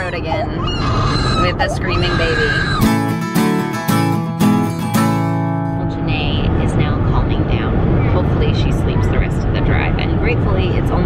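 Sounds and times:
baby screaming: 0.5s - 3.1s
acoustic guitar music sting: 2.9s - 6.5s
car cabin road rumble: 5.7s - 11.0s.

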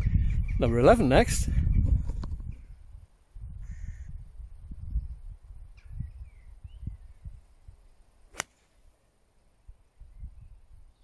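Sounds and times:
wind rumble on microphone: 0.0s - 7.9s, 9.6s - 11.0s.

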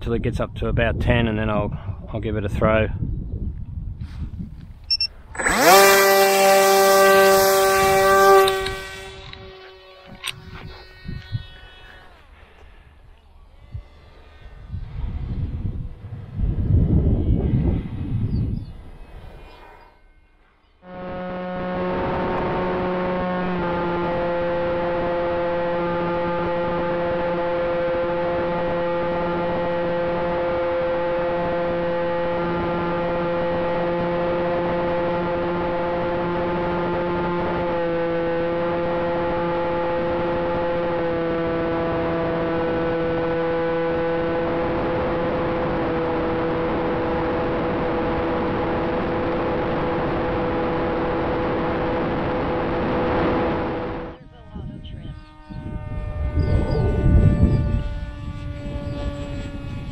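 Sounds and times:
gusting low rumble: 0.0s - 5.8s, 6.6s - 19.8s, 20.9s - 59.9s
electric motor and propeller whine: 3.2s - 59.9s.

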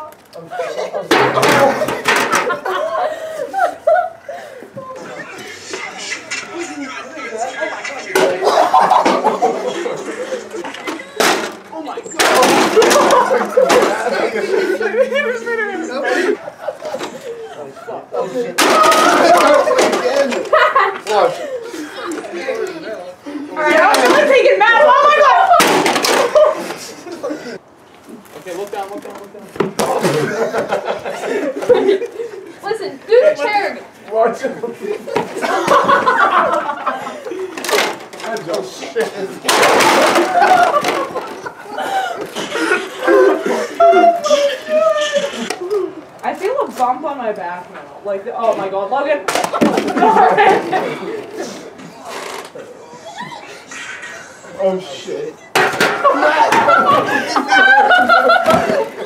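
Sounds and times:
young men talking and exclaiming: 0.0s - 59.0s
young men shouting in alarm: 23.6s - 25.6s.

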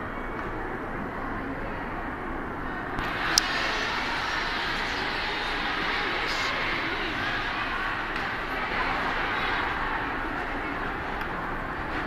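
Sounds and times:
work hall background noise: 0.0s - 12.0s.

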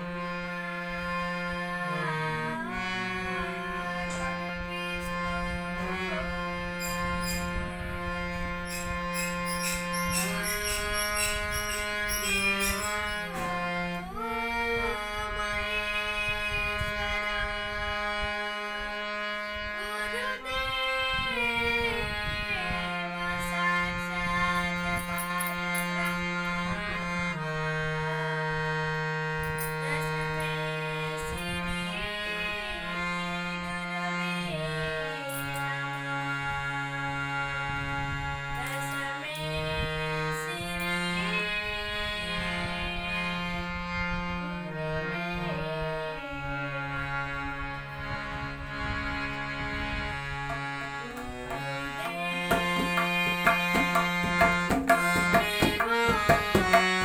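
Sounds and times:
boy singing: 0.0s - 37.4s, 38.2s - 48.0s, 50.4s - 57.0s
harmonium: 0.0s - 57.0s
tabla strokes: 50.5s - 57.0s.

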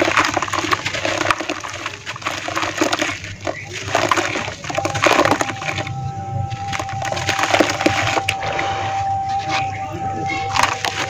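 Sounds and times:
small water splashes: 0.0s - 9.6s, 10.3s - 11.0s
wet soil crumbling: 0.0s - 11.0s.

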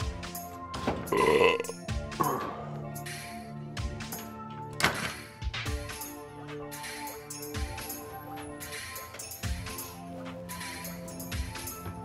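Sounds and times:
background music: 0.0s - 12.0s
man belching loudly: 1.1s - 2.6s.

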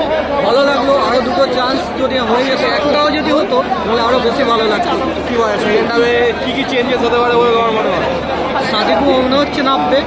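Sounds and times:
crowd chatter: 0.0s - 10.0s
people talking close: 0.0s - 10.0s.

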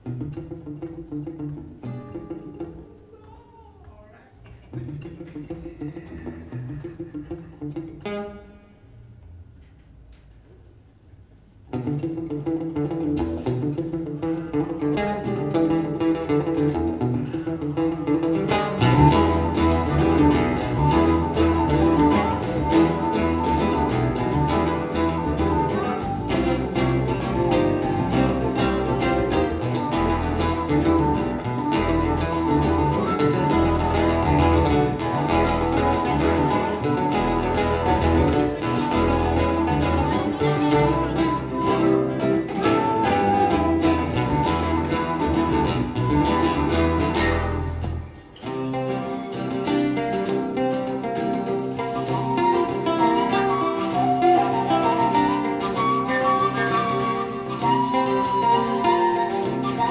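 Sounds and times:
acoustic band playing: 0.0s - 3.5s, 4.7s - 9.7s, 11.7s - 59.9s.

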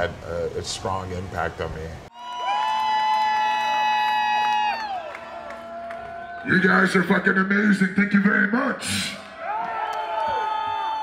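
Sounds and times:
crowd cheering: 2.1s - 7.2s, 8.9s - 11.0s.

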